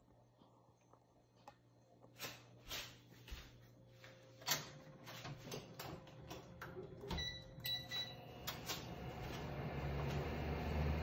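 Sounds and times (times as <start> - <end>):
induction hob humming: 1.5 - 11.0.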